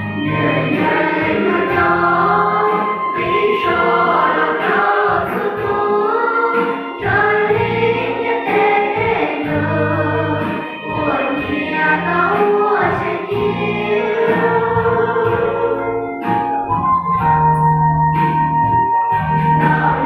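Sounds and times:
choir singing a hymn: 0:00.0 - 0:16.3, 0:19.6 - 0:20.0.

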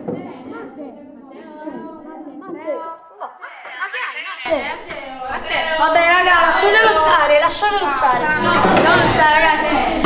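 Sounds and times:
children's voices chattering: 0:00.0 - 0:10.0.

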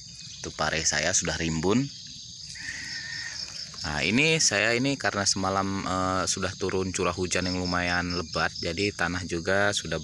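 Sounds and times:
drawn-out insect call: 0:00.0 - 0:10.0
insect chorus chirring: 0:00.0 - 0:10.0.

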